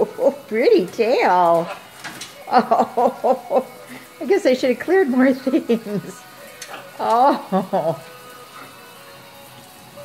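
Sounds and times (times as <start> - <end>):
tap water running into metal sink: 0.0 - 10.0.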